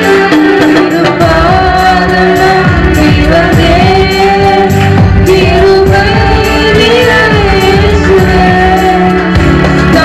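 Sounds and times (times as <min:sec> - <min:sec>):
steady drum rhythm: 0:00.0 - 0:10.0
woman singing into a microphone: 0:00.0 - 0:10.0.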